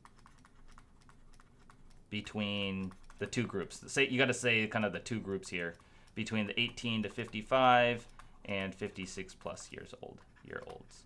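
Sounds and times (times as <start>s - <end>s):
stylus clicking on pen tablet: 0.0s - 11.0s.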